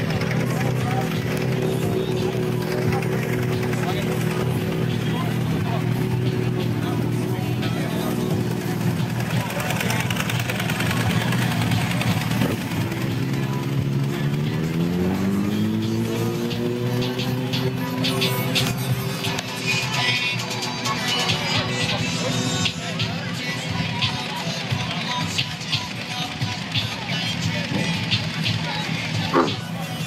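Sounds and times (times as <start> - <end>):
motorbike engines running: 0.0 - 30.0.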